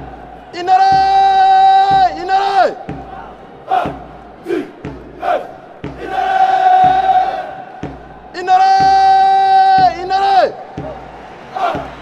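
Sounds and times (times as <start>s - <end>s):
soldiers chanting: 0.0s - 12.0s.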